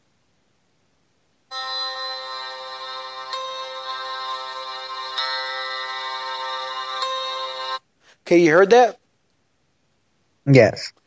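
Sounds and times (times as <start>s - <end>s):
sustained electronic chord: 1.5s - 7.8s.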